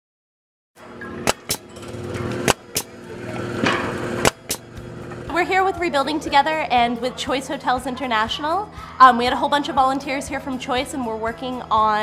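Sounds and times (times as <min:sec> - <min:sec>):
faint music: 0:00.8 - 0:12.0
nail gun shots: 0:01.2 - 0:01.7, 0:02.4 - 0:02.9, 0:03.6 - 0:04.6.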